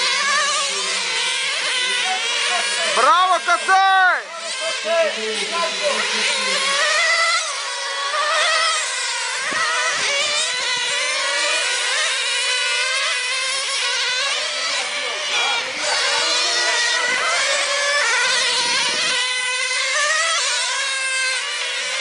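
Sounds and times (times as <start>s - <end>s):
radio-controlled car motors whining: 0.0s - 22.0s.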